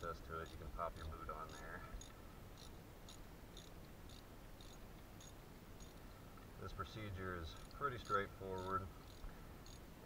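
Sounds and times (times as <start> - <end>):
insect chirping: 0.4 - 10.0.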